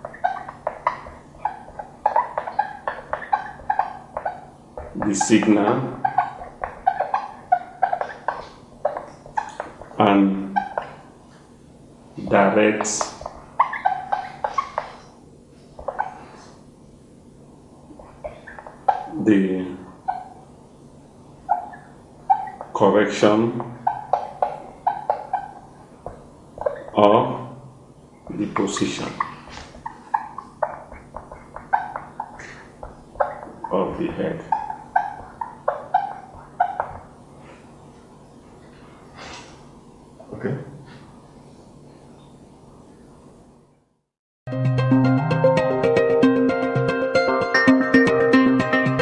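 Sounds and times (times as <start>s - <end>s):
marker squeaking on whiteboard: 0.0s - 11.1s, 12.3s - 16.6s, 17.9s - 19.2s, 21.5s - 22.8s, 23.5s - 27.0s, 28.2s - 37.2s.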